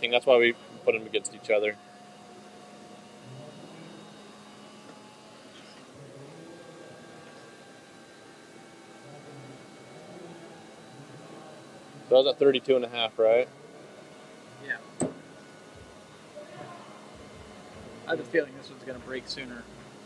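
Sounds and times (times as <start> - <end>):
faint distant voices: 2.3 - 20.0.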